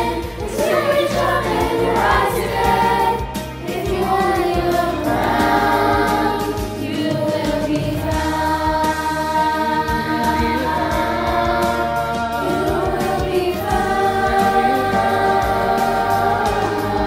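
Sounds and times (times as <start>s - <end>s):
choir singing held notes: 0.0s - 17.0s.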